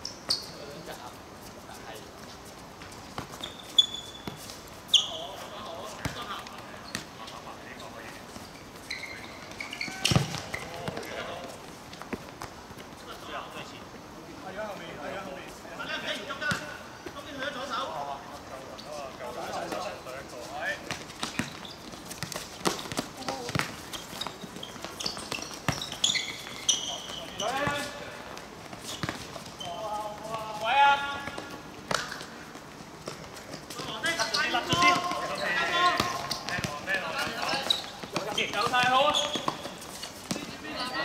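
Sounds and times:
ball being kicked: 0:09.9 - 0:11.1
footsteps on court: 0:18.3 - 0:40.8.

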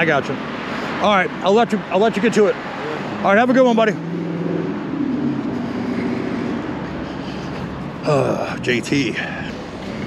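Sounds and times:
passing vehicle engine hum: 0:00.0 - 0:10.0
road noise: 0:00.0 - 0:10.0.

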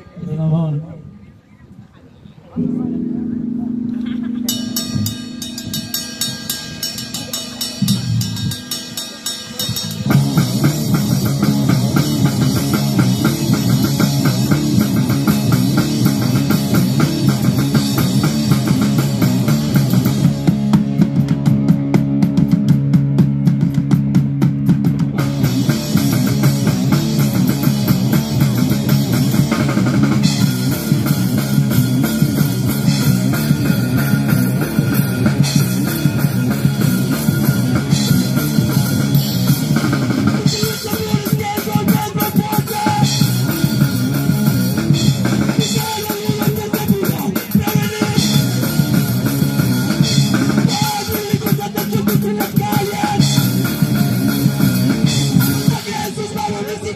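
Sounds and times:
distorted guitars: 0:02.6 - 0:56.9
drums driving: 0:02.6 - 0:56.9.

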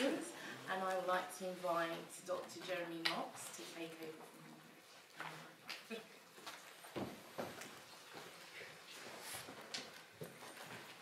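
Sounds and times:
faint footsteps: 0:03.4 - 0:11.0.

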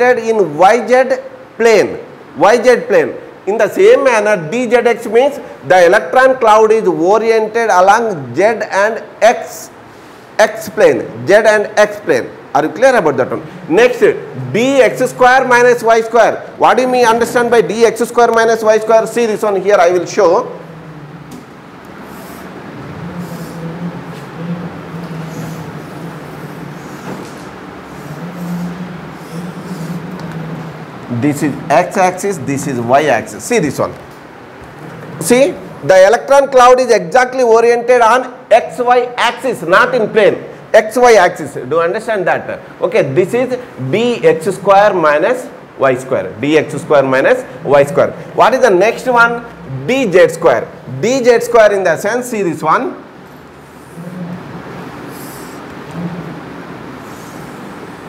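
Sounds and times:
low room hum: 0:00.0 - 0:58.0.

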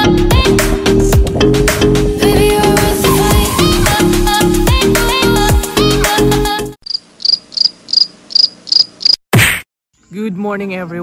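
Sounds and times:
music: 0:00.0 - 0:06.8
cricket chirping: 0:06.8 - 0:09.2.

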